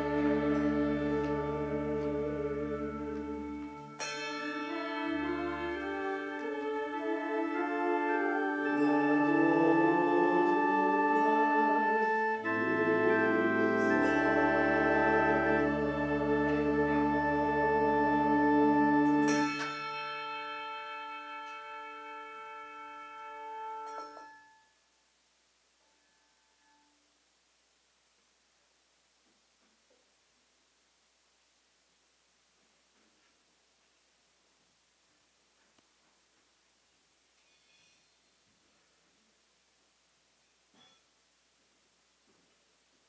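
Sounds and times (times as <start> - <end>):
brass handbells ringing: 0.0 - 6.2, 7.5 - 10.2, 12.0 - 24.6
sustained organ chord: 0.0 - 24.6.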